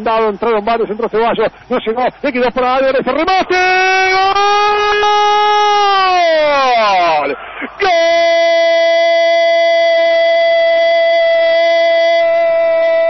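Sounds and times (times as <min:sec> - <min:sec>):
radio commentator shouting goal: 0:00.0 - 0:13.0.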